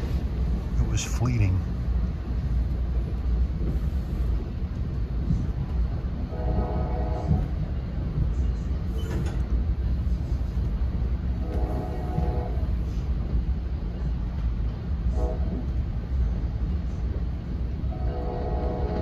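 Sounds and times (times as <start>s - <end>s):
train riding rumble: 0.0s - 19.0s
train horn blasts: 6.2s - 7.6s, 11.4s - 12.9s, 15.1s - 15.6s, 17.9s - 19.0s.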